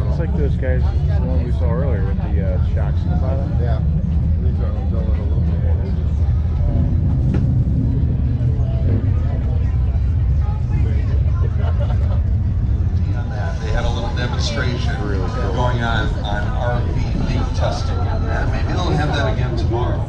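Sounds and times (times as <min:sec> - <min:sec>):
crowd voices: 0:00.0 - 0:20.0
steady low rumble: 0:00.0 - 0:20.0.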